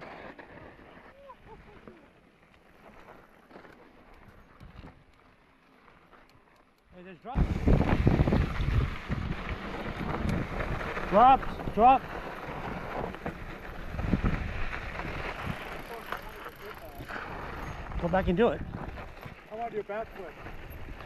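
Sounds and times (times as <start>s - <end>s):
bike rattling: 0.0s - 21.0s
bike tyres on dirt trail: 0.0s - 21.0s
wind buffeting microphone: 7.4s - 15.9s, 17.0s - 19.4s.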